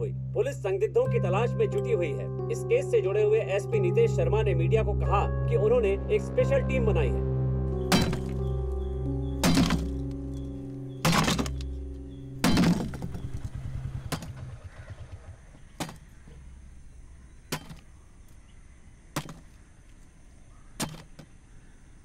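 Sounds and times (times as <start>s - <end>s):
low music chord: 0.0s - 15.2s
bar striking scrap metal: 7.9s - 8.4s, 9.4s - 10.1s, 11.0s - 11.7s, 12.4s - 13.4s, 14.0s - 14.5s, 15.8s - 16.4s, 17.4s - 18.0s, 19.2s - 19.6s, 20.8s - 21.4s.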